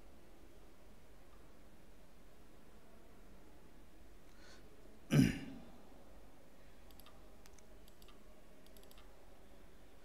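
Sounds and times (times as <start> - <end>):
man coughing: 5.1 - 5.6
computer mouse clicks: 6.8 - 9.2.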